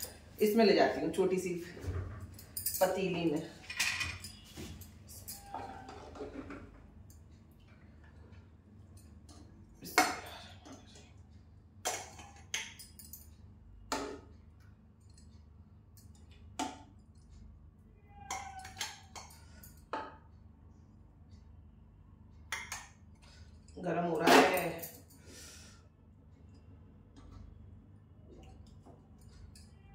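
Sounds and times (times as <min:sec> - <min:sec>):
low steady hum: 0:00.0 - 0:29.9.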